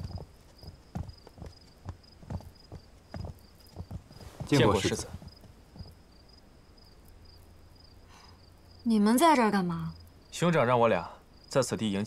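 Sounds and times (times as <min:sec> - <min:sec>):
hollow knocking footfalls: 0:00.0 - 0:06.0.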